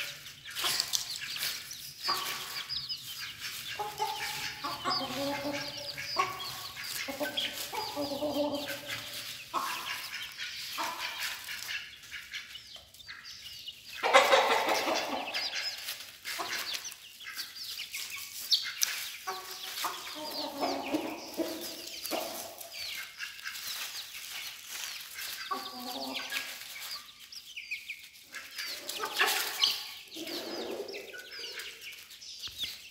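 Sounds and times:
chickens clucking: 0.0s - 32.9s.

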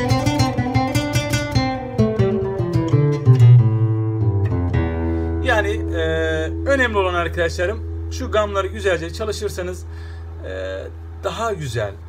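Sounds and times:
classical guitar solo: 0.0s - 9.9s.

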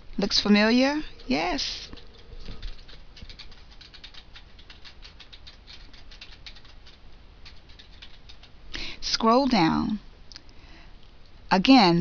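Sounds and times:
computer keyboard typing: 0.3s - 8.6s.

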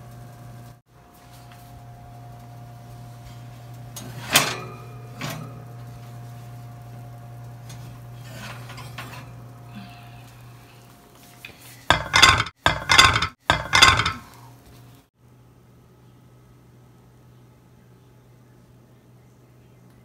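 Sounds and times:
low oven hum: 0.0s - 20.0s
glass dish clattering and scraping: 11.9s - 14.3s.

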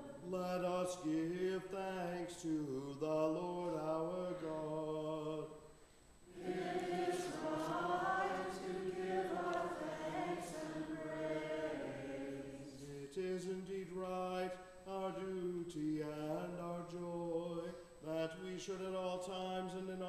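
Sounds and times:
congregation and choir singing: 0.0s - 5.5s, 6.3s - 18.7s
person chanting liturgy: 0.0s - 5.5s, 6.3s - 20.0s.

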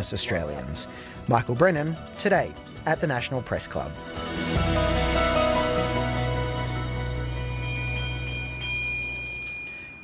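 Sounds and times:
theme music: 0.0s - 9.7s
brass tube chime ringing: 5.6s - 10.0s.

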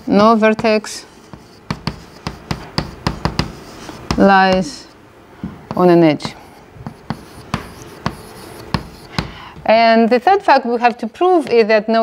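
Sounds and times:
chalk tapping on blackboard: 0.0s - 4.8s, 5.7s - 9.4s.

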